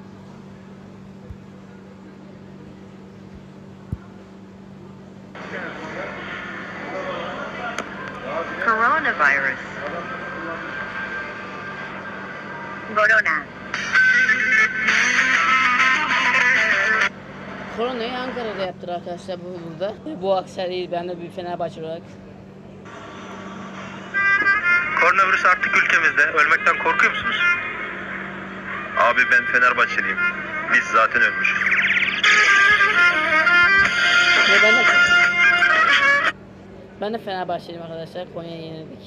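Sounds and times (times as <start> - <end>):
distant street traffic: 0.0 - 39.0
low steady hum: 0.0 - 39.0.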